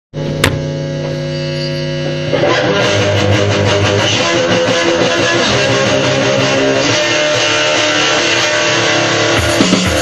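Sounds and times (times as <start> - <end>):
guitar amplifier hum: 0.2 - 10.0.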